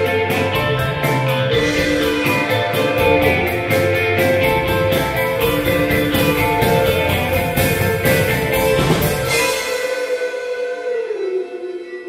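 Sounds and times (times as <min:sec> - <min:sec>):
rock band playing: 0:00.0 - 0:11.6.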